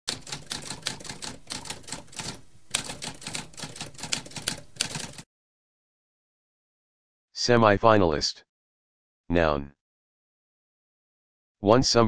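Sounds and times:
typewriter keys clacking: 0.1 - 5.2.

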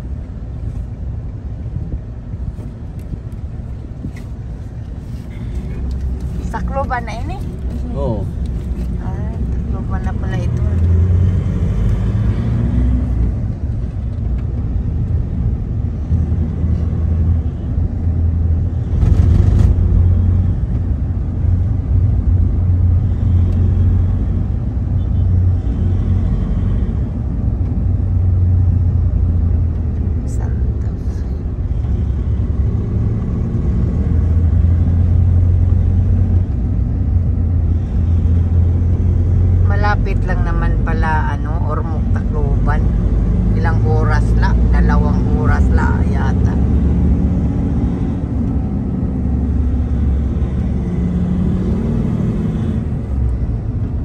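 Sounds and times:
road noise: 0.0 - 54.0
van engine rumble: 0.0 - 54.0.

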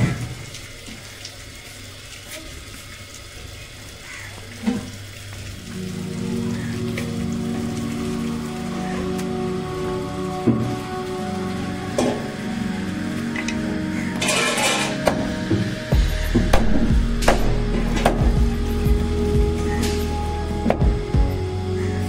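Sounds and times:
background music sustained tones: 5.6 - 22.0.

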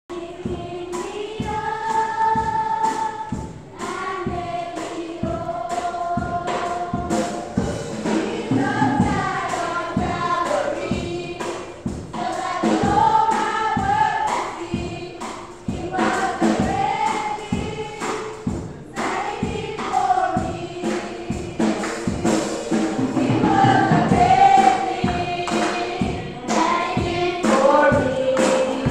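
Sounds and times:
choir singing gospel: 0.1 - 28.9
steady beat: 0.1 - 28.9.

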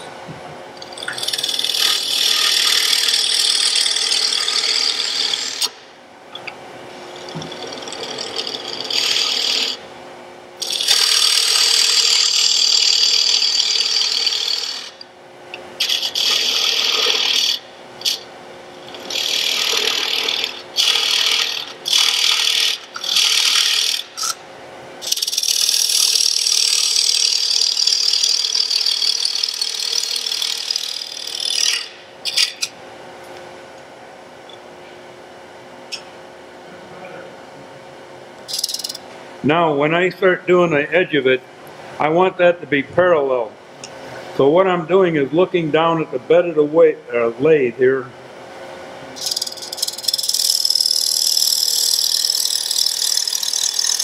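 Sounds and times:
turning tool scraping wood: 0.8 - 5.7, 7.2 - 9.8, 10.6 - 15.0, 15.8 - 18.2, 18.8 - 24.4, 49.2 - 54.0
lathe humming: 0.8 - 9.9, 10.5 - 24.3, 25.0 - 32.6, 38.4 - 39.0, 49.2 - 54.0.

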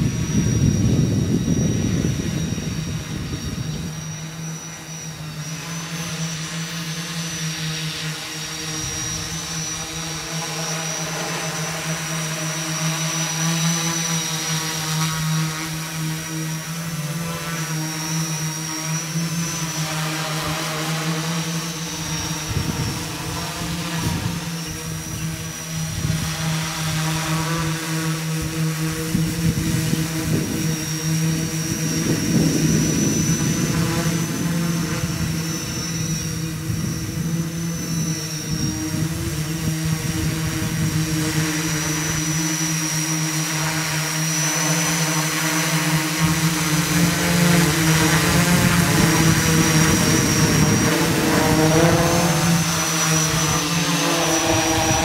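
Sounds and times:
drone multi-rotor buzz: 0.0 - 55.0.

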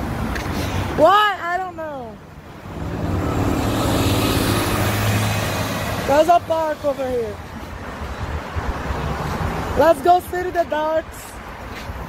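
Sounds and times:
vehicle passing close by: 2.5 - 7.2.

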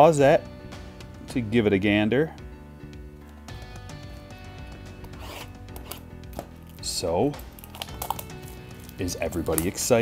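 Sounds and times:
soft background music: 0.0 - 10.0.

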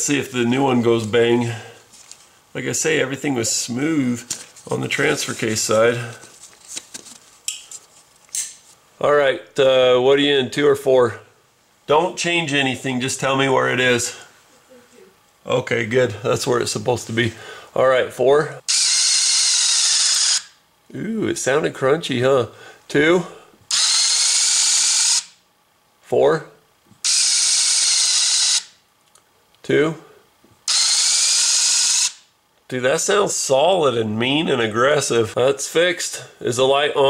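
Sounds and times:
electric motor whirring: 18.7 - 20.5, 23.7 - 25.4, 27.0 - 28.7, 30.7 - 32.2.

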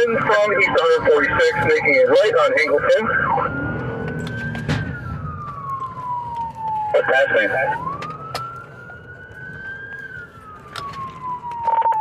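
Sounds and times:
engine and road rumble: 0.0 - 12.0
police siren wailing: 0.0 - 12.0.

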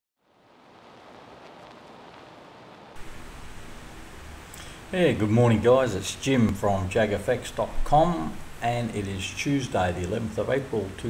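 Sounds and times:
steady hiss: 0.2 - 11.0.

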